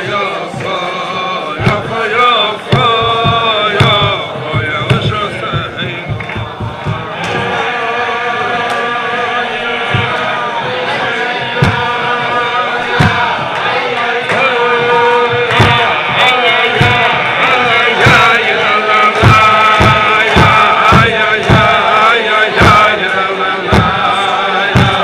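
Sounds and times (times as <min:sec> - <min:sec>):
men singing in unison: 0:00.0 - 0:25.0
rhythmic thumps keeping time: 0:00.0 - 0:25.0.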